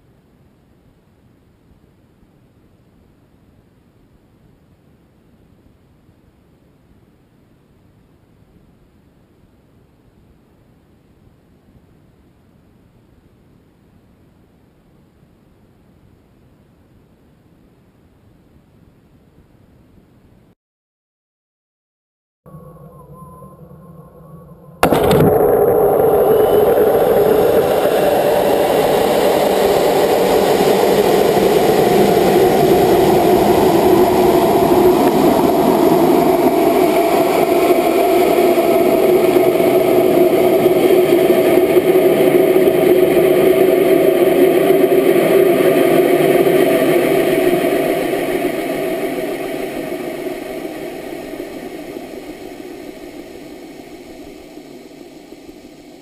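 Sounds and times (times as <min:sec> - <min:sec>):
rocket engine rushing: 0:24.8 - 0:55.9.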